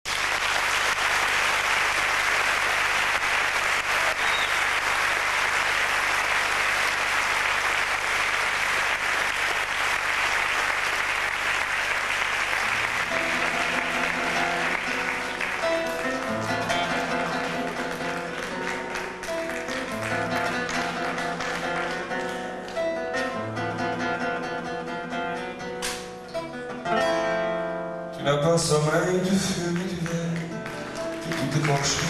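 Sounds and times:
audience applauding: 0.0s - 24.1s, 28.9s - 32.0s
guitar: 12.5s - 32.0s.

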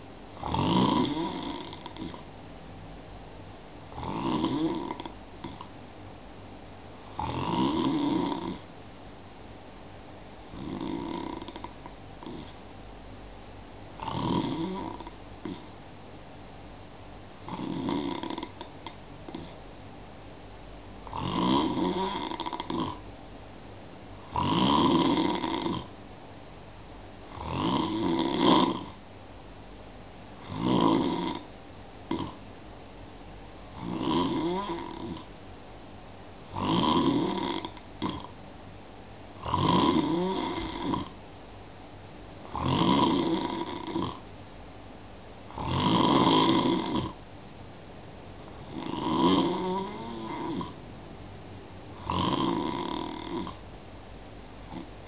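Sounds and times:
person snoring: 0.4s - 2.3s, 3.9s - 5.7s, 7.0s - 8.7s, 10.5s - 12.6s, 14.0s - 15.7s, 17.4s - 19.6s, 21.0s - 23.0s, 24.2s - 25.9s, 27.3s - 29.0s, 30.4s - 31.5s, 32.1s - 32.4s, 33.6s - 35.3s, 36.5s - 38.3s, 39.4s - 41.2s, 42.5s - 44.2s, 45.5s - 47.2s, 48.5s - 50.8s, 51.9s - 53.6s, 54.6s - 54.9s.

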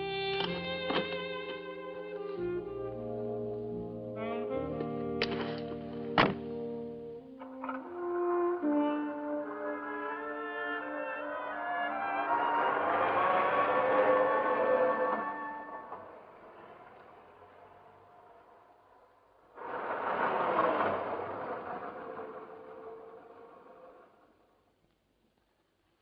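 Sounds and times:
film score music: 0.0s - 18.0s.

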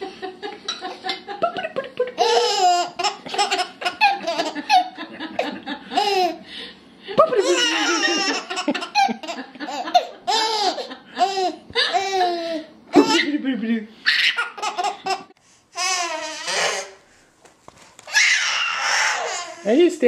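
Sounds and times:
baby laughing and squealing: 7.4s - 9.2s, 10.3s - 13.3s, 14.0s - 15.2s, 15.8s - 17.0s, 18.1s - 19.7s.

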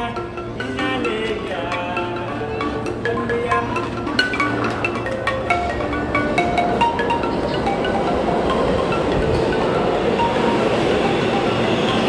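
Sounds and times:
wooden xylophone played with mallets: 0.0s - 12.0s.

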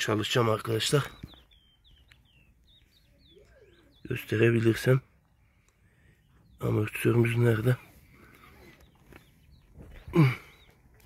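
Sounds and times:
faint bird chirps: 0.0s - 11.0s.

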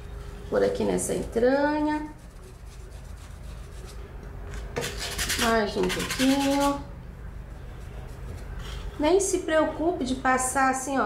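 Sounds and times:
low steady room hum: 0.0s - 11.0s
paintbrush rubbing on fabric: 2.0s - 4.1s.

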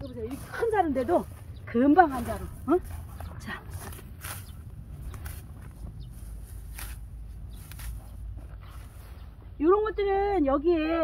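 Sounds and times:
leaves rustling: 0.0s - 9.4s
sickle swishing through stems: 2.1s - 9.4s.

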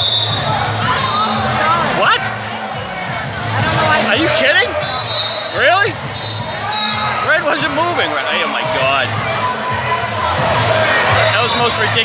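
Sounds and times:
voices shouting and calling: 0.0s - 12.0s.

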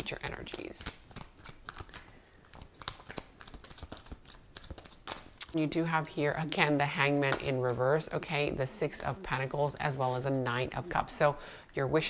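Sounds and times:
cards being shuffled: 0.0s - 5.6s, 9.0s - 10.4s.

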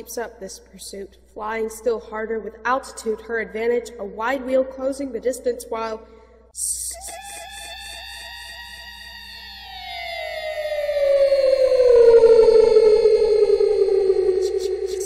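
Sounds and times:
warbling siren-like tone: 7.3s - 15.0s.

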